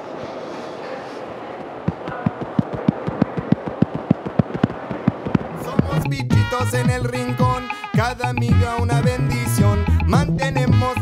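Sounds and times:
sharp rhythmic thumps: 1.9 - 11.0.

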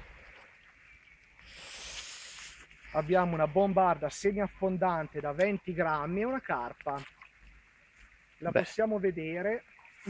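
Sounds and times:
light rain on river: 0.0 - 2.8.

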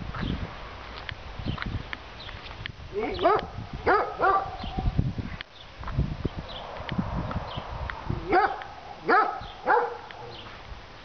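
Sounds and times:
dog barking: 3.0 - 4.8, 8.3 - 10.5.

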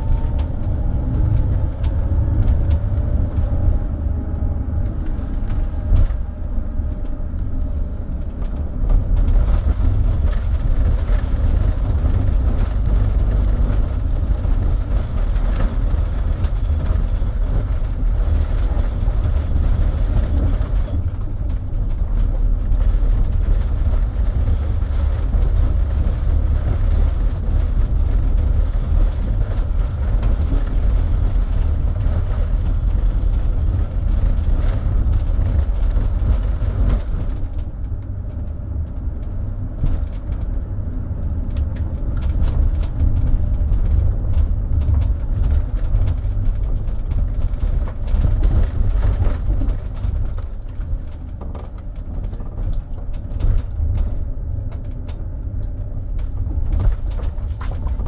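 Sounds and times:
minibus engine and road rumble: 0.0 - 58.0.

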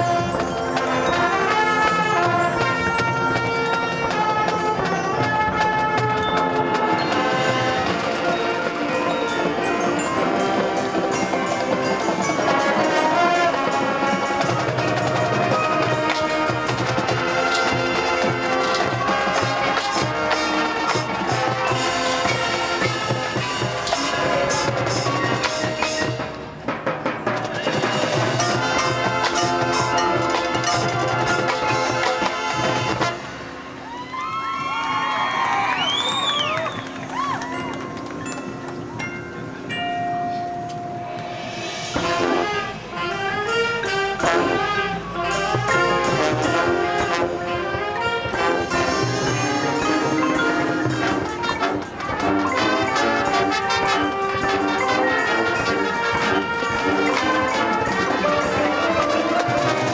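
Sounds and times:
mallet percussion: 0.0 - 33.8, 36.9 - 59.9
brass chords: 0.0 - 33.9, 40.2 - 59.9
drumline: 0.0 - 39.8, 40.6 - 59.9.

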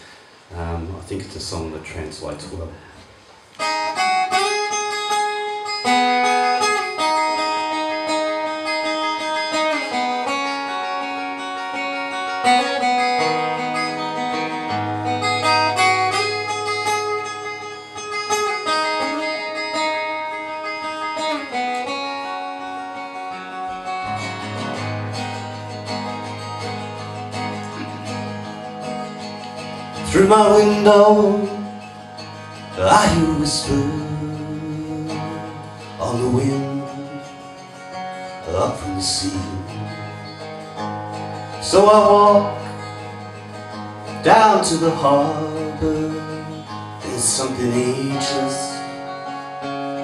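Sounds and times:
acoustic guitar picking: 0.0 - 50.0.

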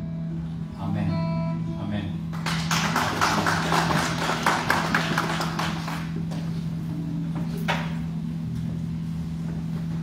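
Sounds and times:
steady low hum: 0.0 - 10.0
people clapping: 2.3 - 6.6.

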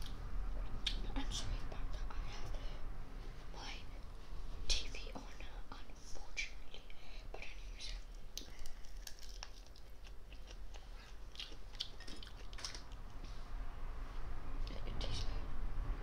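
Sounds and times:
boy whispering: 0.9 - 2.8, 3.5 - 4.0, 4.7 - 8.1, 14.7 - 15.5.

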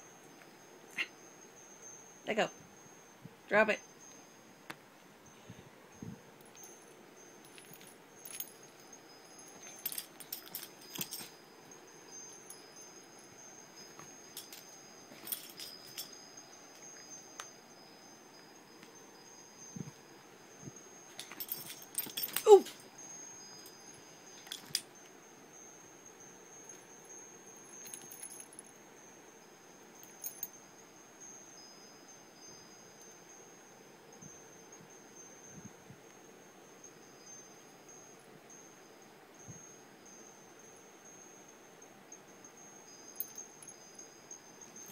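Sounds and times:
metal collar tags jingling: 5.2 - 25.7, 26.5 - 28.8, 29.9 - 30.6, 42.2 - 44.9
faint high ringing: 5.2 - 44.9.

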